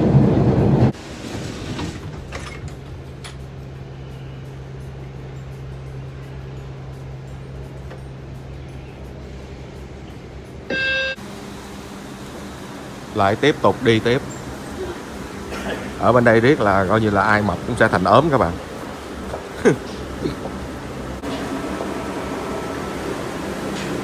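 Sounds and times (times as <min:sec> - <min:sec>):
loud subway train noise: 0:00.0 - 0:24.0
short electronic beep: 0:10.7 - 0:11.2.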